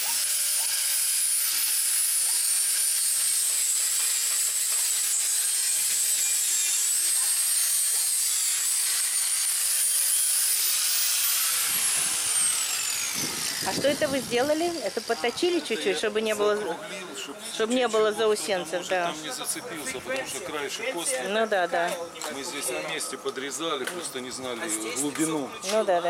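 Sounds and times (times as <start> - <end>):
angle grinder grinding steel: 0.0 - 16.6.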